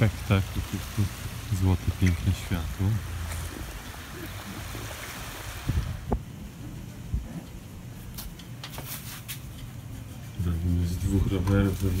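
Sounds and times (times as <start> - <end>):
sea waves washing on beach: 0.0 - 6.2
wind rumbling on microphone: 0.0 - 8.0.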